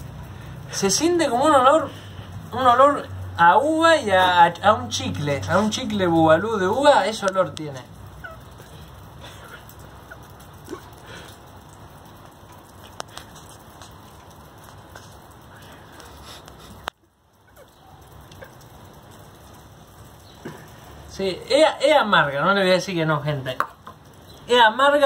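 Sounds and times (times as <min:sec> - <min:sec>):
light rain hissing: 0:00.0 - 0:25.0.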